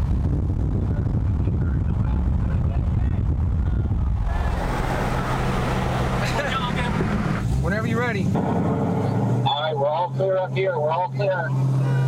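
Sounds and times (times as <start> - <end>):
car engine running hard: 0.0 - 12.0
road and wind roar: 0.0 - 12.0
people talking: 6.2 - 8.4, 9.5 - 11.5.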